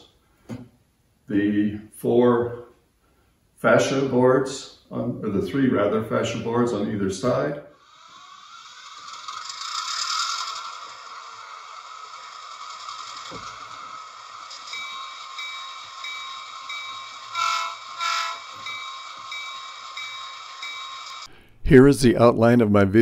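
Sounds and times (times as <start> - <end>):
train rushing on rails: 7.8 - 21.4
train horn blasts: 17.3 - 18.5.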